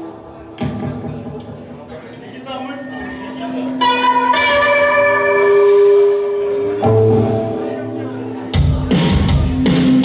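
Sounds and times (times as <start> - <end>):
live rock band: 0.0 - 1.8, 2.8 - 10.0
ringing electric guitar notes: 2.8 - 8.6
bass: 8.6 - 10.0.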